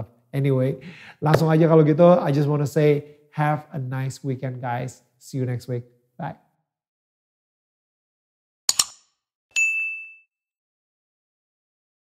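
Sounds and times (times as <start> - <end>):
mouse double click: 8.7 - 9.0
notification bell ding: 9.6 - 10.3.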